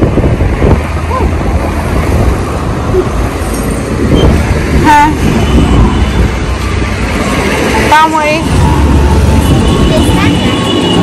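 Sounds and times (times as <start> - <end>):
cars passing on street: 0.0 - 11.0.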